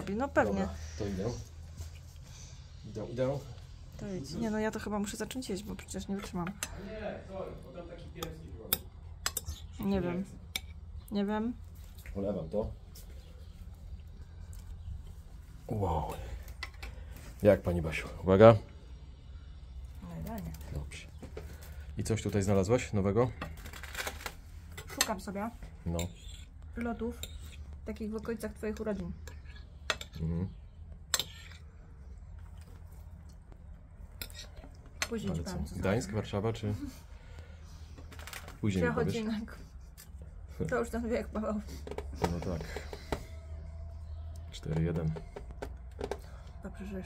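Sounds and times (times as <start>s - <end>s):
fork scraping plate: 25.9s - 27.8s, 31.1s - 31.7s, 34.1s - 34.8s.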